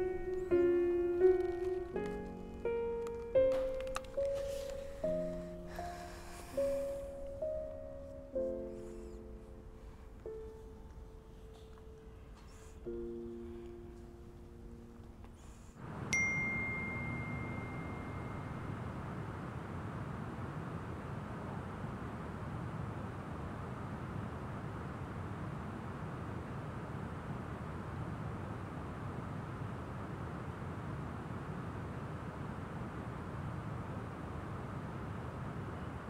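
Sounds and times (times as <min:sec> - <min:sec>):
distant traffic: 0:00.0 - 0:36.0
outdoor wind: 0:00.0 - 0:36.0
phone notification ding: 0:16.2 - 0:18.4.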